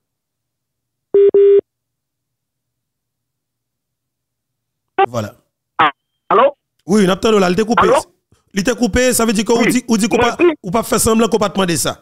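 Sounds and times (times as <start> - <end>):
telephone beeps: 1.2 - 1.6.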